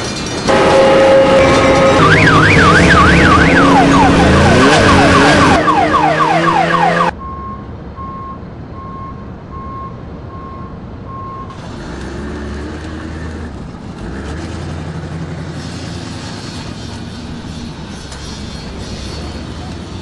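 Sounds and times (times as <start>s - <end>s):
engine running: 0.0s - 7.5s, 11.5s - 20.0s
traffic noise: 0.0s - 20.0s
reversing alarm beeping: 0.5s - 11.6s.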